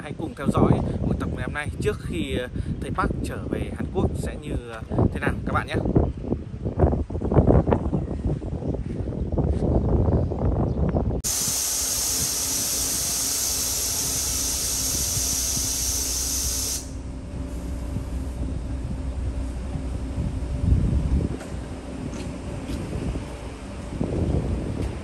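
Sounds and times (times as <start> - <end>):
wind buffeting microphone: 0.0 - 25.0
compressed air hissing: 11.2 - 18.5
bus engine idling: 11.2 - 25.0.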